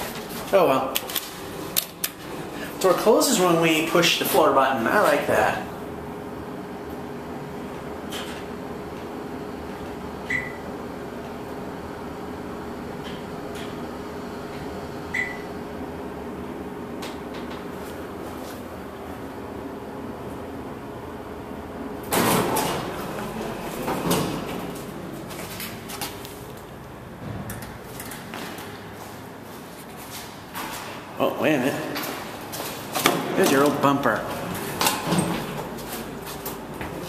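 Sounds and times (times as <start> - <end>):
elevator car humming: 0.0 - 31.2
elevator doors clunking open: 22.0 - 29.0, 31.8 - 37.0.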